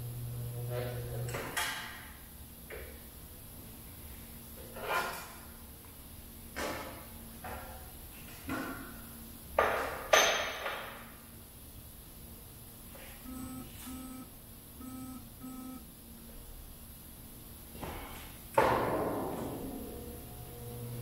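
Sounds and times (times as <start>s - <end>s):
short beeps: 13.2s - 14.2s, 14.8s - 15.8s.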